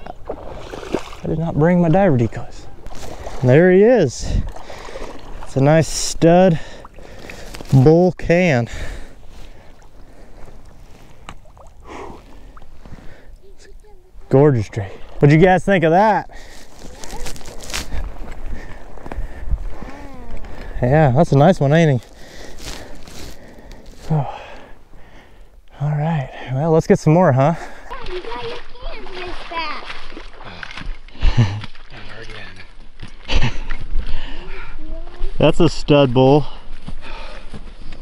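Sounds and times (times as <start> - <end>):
footsteps through shallow water: 0.0 - 25.4, 27.4 - 38.0
grass stems rustling: 7.1 - 7.8, 16.4 - 20.8, 21.7 - 24.1
footsteps through dry grass: 16.4 - 20.8, 21.8 - 24.1.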